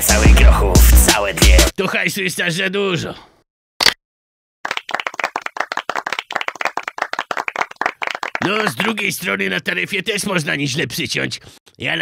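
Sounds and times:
audience clapping: 0:04.6 - 0:08.9.

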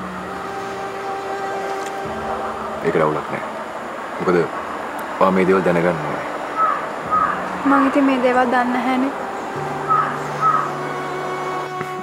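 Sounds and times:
soft held music chord: 0:00.0 - 0:12.0.

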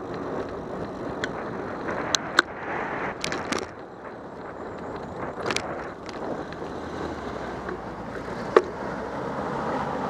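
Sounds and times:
bicycle tyre noise: 0:00.0 - 0:09.1
car traffic: 0:00.0 - 0:10.0
wind on microphone: 0:00.0 - 0:10.0.

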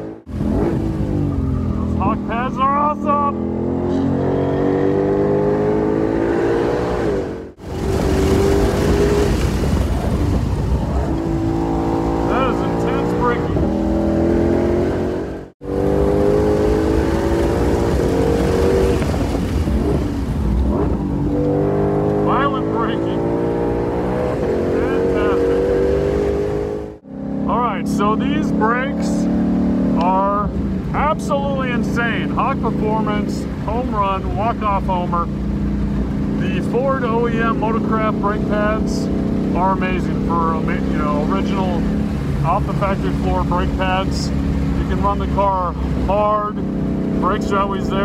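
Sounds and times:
car engine accelerating: 0:00.0 - 0:48.0.

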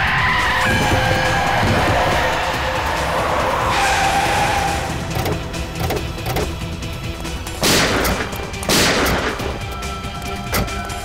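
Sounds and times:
tyres squealing in a skid: 0:00.0 - 0:06.6
car engine running: 0:00.2 - 0:11.0.

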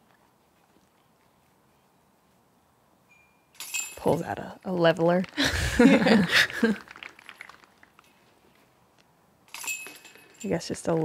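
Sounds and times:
faint open-air ambience: 0:00.0 - 0:11.0
people laughing: 0:05.4 - 0:06.9.

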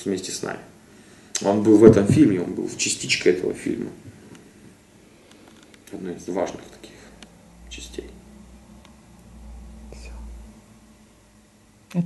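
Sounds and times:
faint breathy hiss: 0:00.8 - 0:01.7.

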